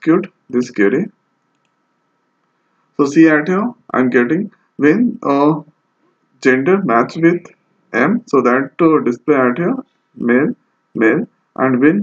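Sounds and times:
room hiss: 0.0s - 12.0s
faint computer clicks: 1.4s - 1.8s.

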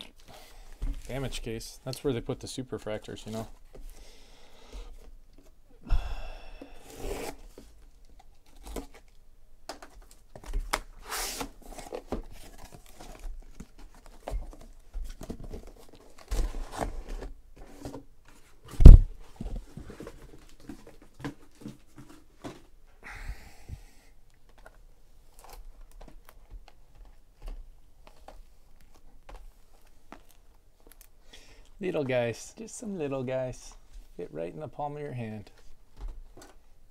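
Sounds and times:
tape tearing: 6.9s - 9.2s.

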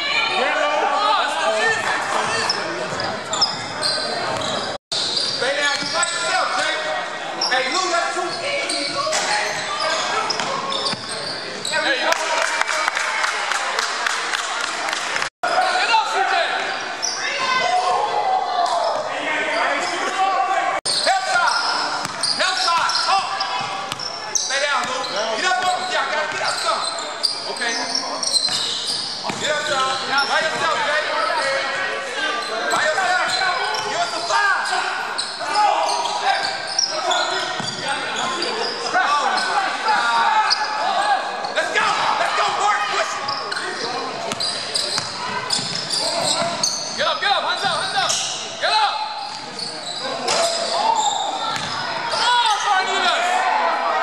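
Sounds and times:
players shouting: 15.4s - 54.0s.

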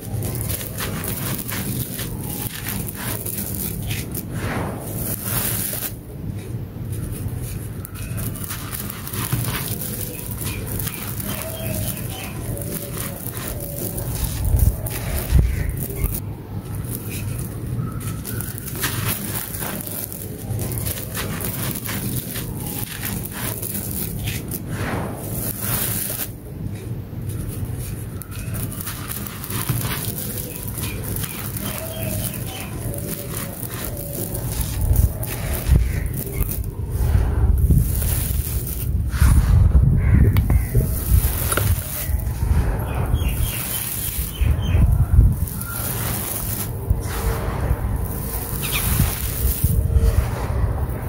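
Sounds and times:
hands raking loose soil: 0.0s - 26.4s, 27.3s - 51.0s
dirt crunching and crackling: 0.0s - 51.0s
steady low rumble: 0.0s - 51.0s.

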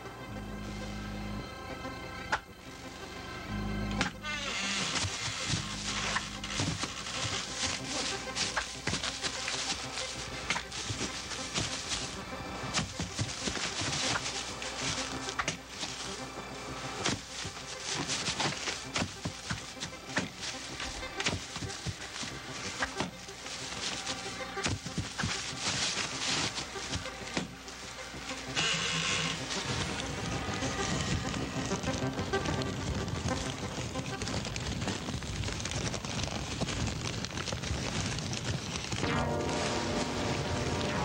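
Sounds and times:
music score: 39.0s - 41.0s.

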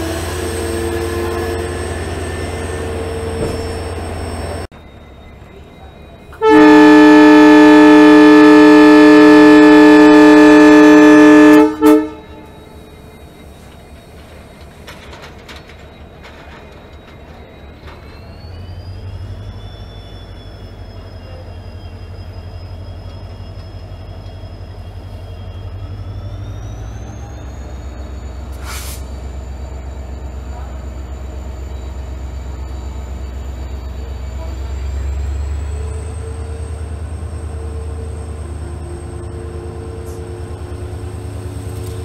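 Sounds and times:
locomotive engine rumble: 0.0s - 42.0s
locomotive air horn: 6.4s - 12.7s.

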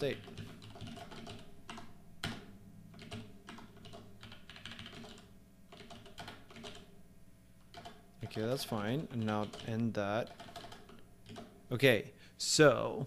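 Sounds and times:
computer keyboard typing: 0.0s - 6.9s, 7.7s - 11.6s.

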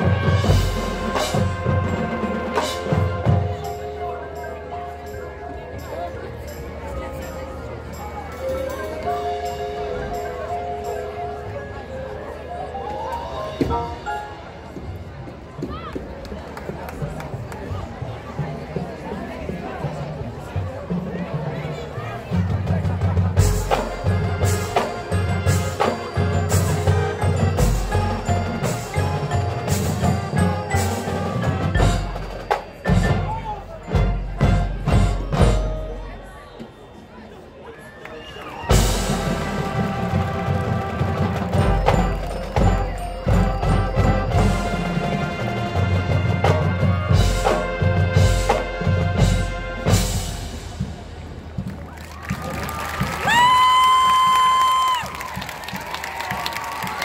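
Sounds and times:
marching band playing: 0.0s - 36.7s, 38.6s - 57.0s.

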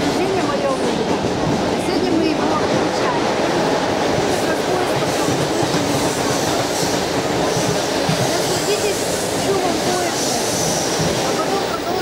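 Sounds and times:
faint voices: 0.0s - 12.0s
train wheels rumbling on track: 0.0s - 12.0s.

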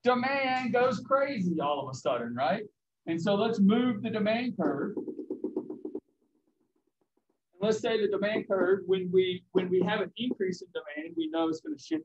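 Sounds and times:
pen tapping on whiteboard: 4.6s - 8.8s.

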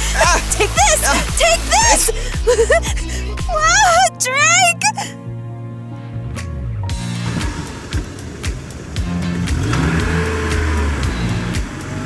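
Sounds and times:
background music with steady beat: 0.0s - 12.0s
car engine running: 6.6s - 12.0s.

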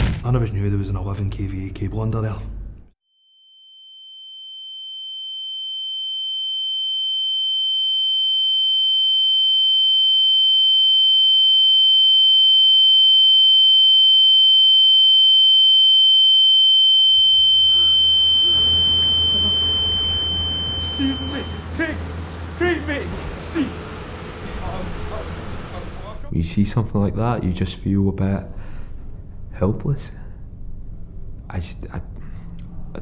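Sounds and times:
high steady ringing tone: 3.0s - 24.5s.

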